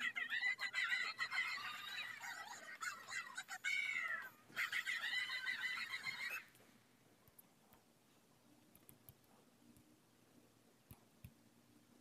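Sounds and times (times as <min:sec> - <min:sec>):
high-pitched cartoon voice: 0:00.0 - 0:06.5.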